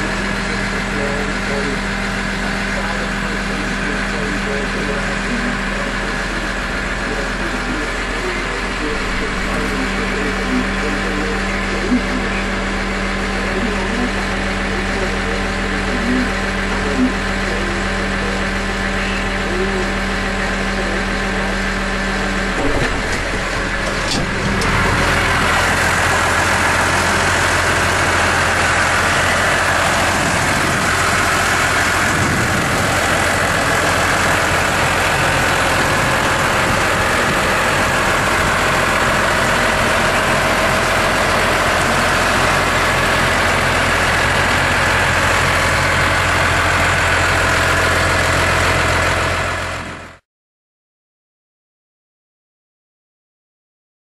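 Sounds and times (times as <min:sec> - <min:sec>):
tractor diesel engine idling: 0:00.0 - 0:50.2.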